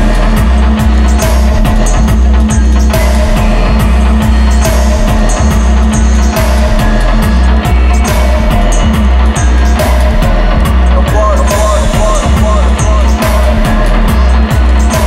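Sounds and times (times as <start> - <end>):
deep heavy bass line: 0.0 - 15.0
dub reggae music: 0.0 - 15.0.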